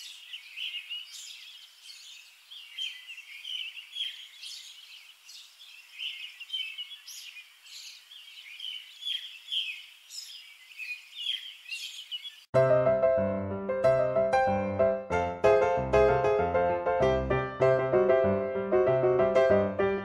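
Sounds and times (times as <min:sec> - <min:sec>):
faint outdoor background noise: 0:00.0 - 0:12.5
songbirds chirping: 0:00.0 - 0:12.5.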